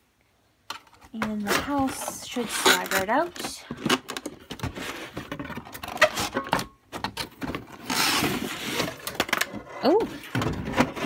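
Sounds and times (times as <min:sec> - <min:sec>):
cardboard and plastic scraping: 0:00.8 - 0:11.0.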